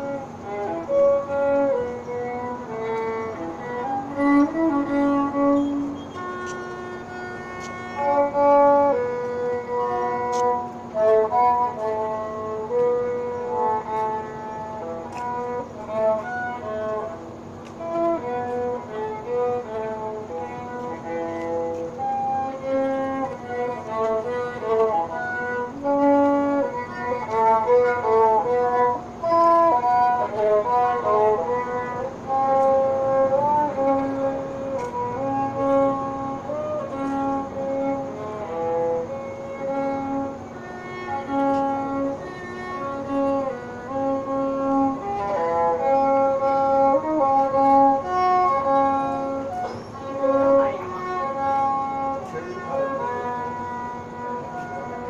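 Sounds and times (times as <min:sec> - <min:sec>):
steady low tone: 0:00.0 - 0:55.0
violin melody: 0:00.0 - 0:55.0.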